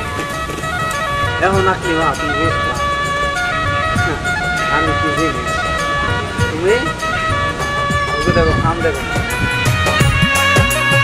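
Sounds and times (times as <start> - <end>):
music of held notes: 0.0 - 11.0
man speaking: 1.4 - 2.9, 3.9 - 5.6, 6.4 - 7.0, 8.1 - 9.3.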